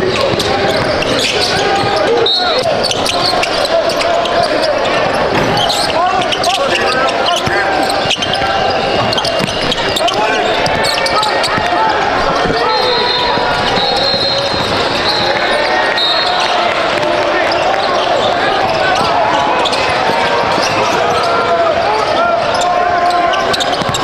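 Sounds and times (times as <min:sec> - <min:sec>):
voices in background: 0:00.0 - 0:24.0
basketball bouncing on hardwood: 0:13.2 - 0:15.4.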